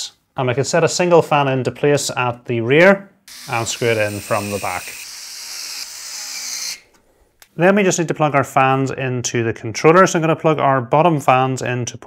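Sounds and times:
electric screwdriver running: 3.3 - 6.8.

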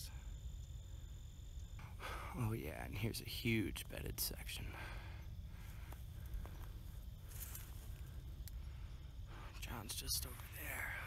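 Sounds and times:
steady low rumble: 0.1 - 11.0
faint footsteps: 5.5 - 8.6
legs brushing through tall grass: 5.6 - 8.2.

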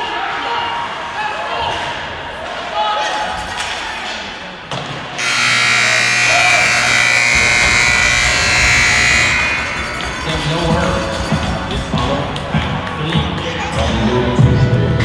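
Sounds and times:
loud electric buzzer: 5.2 - 10.4.

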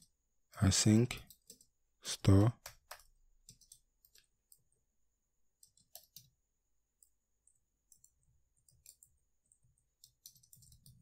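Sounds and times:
computer keyboard keystrokes: 2.6 - 4.6, 5.6 - 6.4, 7.0 - 11.0.

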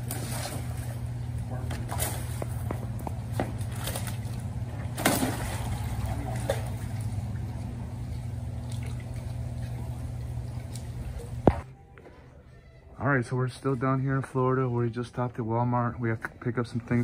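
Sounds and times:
pond water splashing: 0.0 - 11.6
low steady hum: 0.0 - 17.0.

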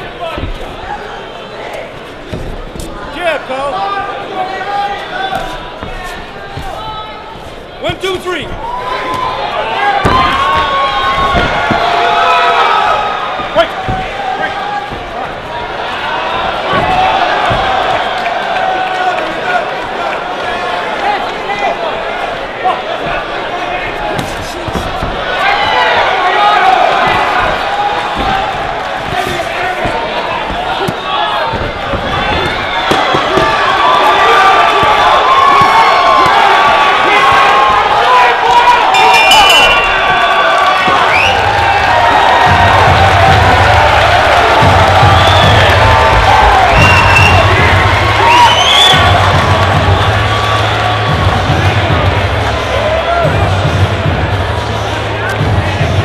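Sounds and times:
crowd shouting and cheering: 0.0 - 56.0.

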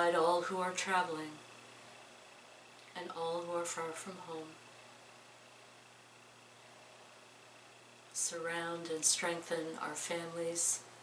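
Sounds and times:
low hum and hiss: 0.0 - 11.0.

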